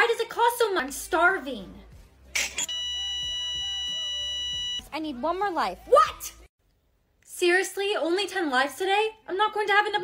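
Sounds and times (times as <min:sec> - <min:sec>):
long electronic beep: 0:02.7 - 0:04.8.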